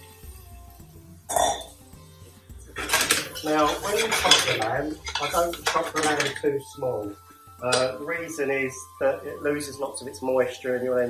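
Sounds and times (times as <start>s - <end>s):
background music with bass: 0.0s - 11.0s
metal bowl clinking on pot: 2.8s - 6.6s.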